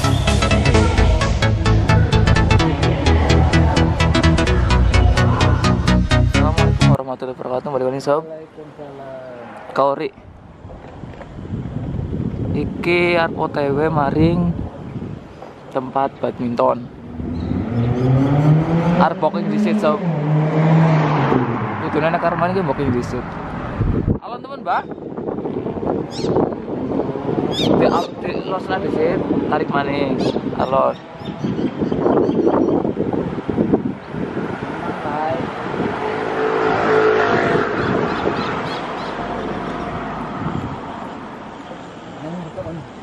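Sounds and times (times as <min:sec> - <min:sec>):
vehicle passing by: 0:01.6 - 0:06.2, 0:17.0 - 0:24.2, 0:25.4 - 0:27.6, 0:32.9 - 0:43.0.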